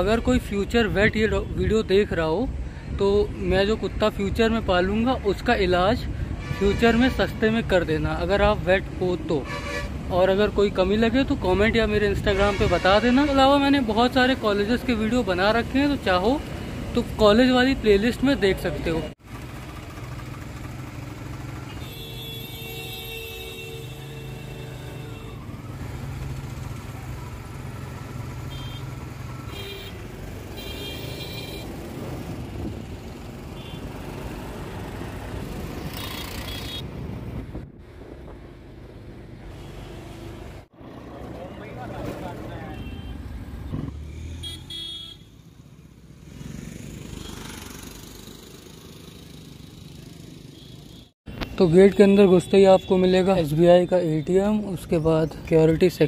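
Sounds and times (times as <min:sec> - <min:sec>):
traffic engines and road noise: 0:00.0 - 0:56.0
vehicle horns honking: 0:09.4 - 0:10.0, 0:12.2 - 0:13.6, 0:21.7 - 0:25.5, 0:28.4 - 0:31.8, 0:33.5 - 0:34.0, 0:36.3 - 0:36.8, 0:42.5 - 0:43.4, 0:44.3 - 0:45.5, 0:50.4 - 0:51.4, 0:52.0 - 0:53.3.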